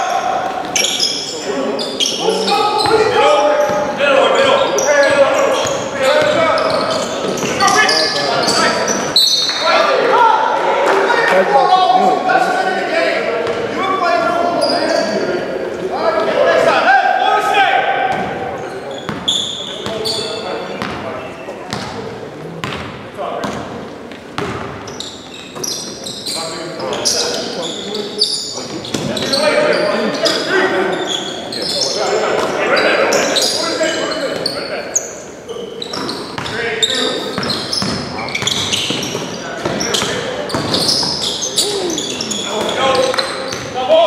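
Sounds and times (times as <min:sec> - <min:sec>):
sneaker squeaks: 0:00.0 - 0:09.7, 0:14.2 - 0:15.1, 0:18.1 - 0:22.0, 0:22.6 - 0:43.9
players calling out: 0:00.0 - 0:22.1, 0:24.8 - 0:44.0
basketball bouncing on wooden floor: 0:24.4 - 0:24.8.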